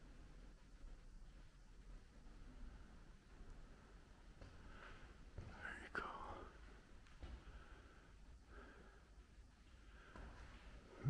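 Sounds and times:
faint whispering voice: 5.4s - 6.8s.

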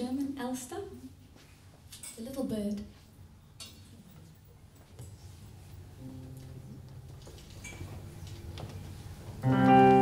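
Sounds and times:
loud keyboard chord: 6.0s - 7.1s, 9.4s - 10.0s
keyboard held notes: 9.4s - 10.0s.

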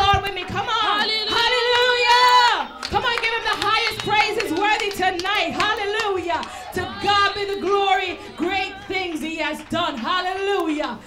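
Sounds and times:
woman singing gospel: 0.0s - 11.0s.

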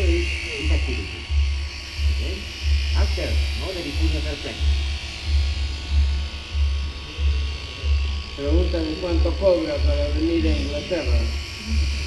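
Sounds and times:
electric shears buzzing: 0.0s - 12.0s
low pulsing throb: 0.0s - 12.0s.

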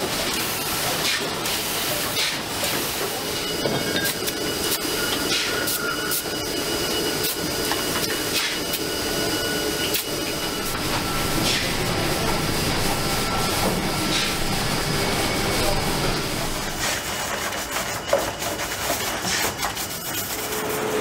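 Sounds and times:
conveyor machinery noise and hiss: 0.0s - 21.0s.

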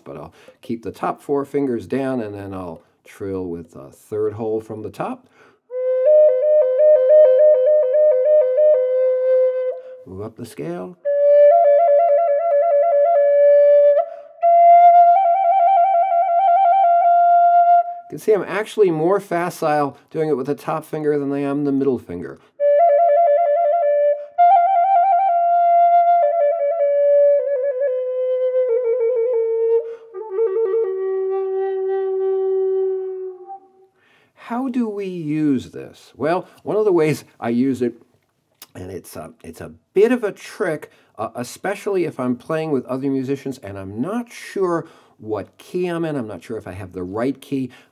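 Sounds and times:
flute trill: 5.7s - 10.0s, 11.0s - 18.1s, 22.6s - 33.9s.

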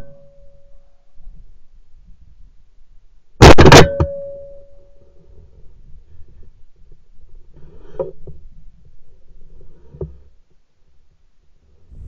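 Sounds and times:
shotgun shot: 3.4s - 4.0s.

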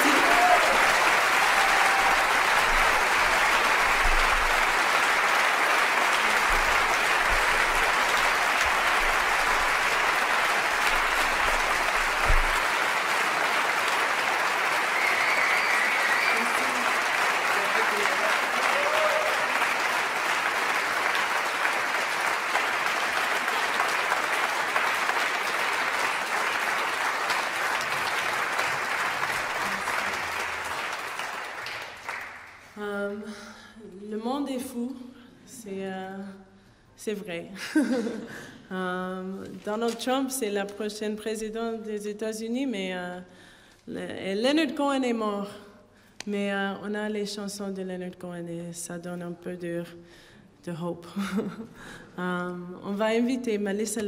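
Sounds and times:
audience applauding: 0.0s - 32.8s.

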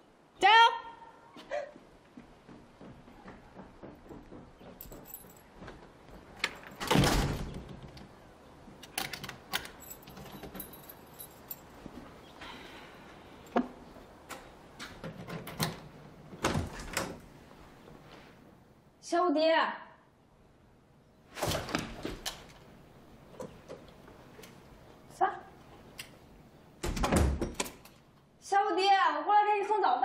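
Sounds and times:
door pushed open: 6.4s - 8.0s, 14.3s - 17.3s, 26.8s - 27.9s
wooden door thudding shut: 6.8s - 7.9s, 26.8s - 27.7s
keys and lock clicking: 8.8s - 11.8s.

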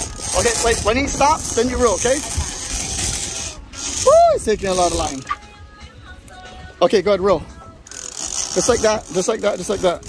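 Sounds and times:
fishing reel drag buzzing: 0.0s - 5.4s, 7.8s - 10.0s.

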